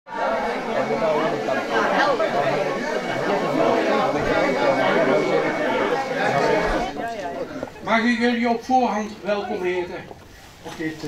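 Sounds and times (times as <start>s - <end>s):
crowd chatter: 0.1s - 11.0s.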